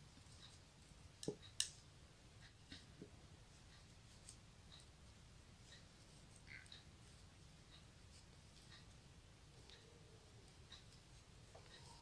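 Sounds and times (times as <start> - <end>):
knitting needles clicking: 0.1 - 12.0.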